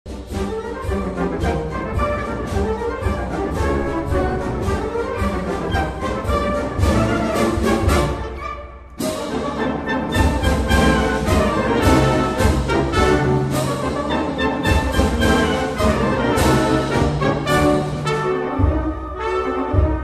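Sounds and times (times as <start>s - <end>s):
brass band music: 0.1s - 20.0s.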